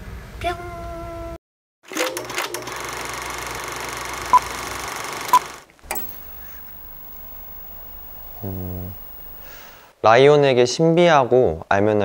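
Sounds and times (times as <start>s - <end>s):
machine hum: 3.8s - 9.8s
clicks: 5.4s - 9.8s
short high electronic beeps: 5.9s - 9.8s.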